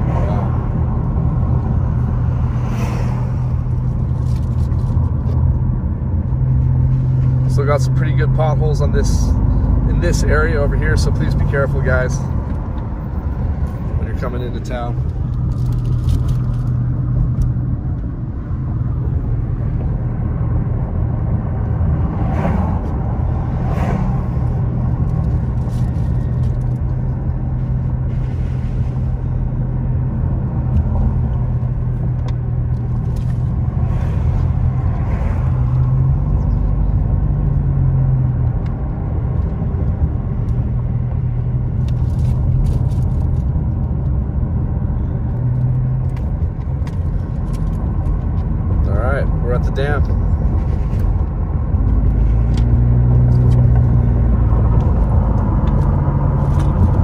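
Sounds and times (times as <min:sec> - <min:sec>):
car engine hum: 0:00.0 - 0:57.0
road noise: 0:00.0 - 0:57.0.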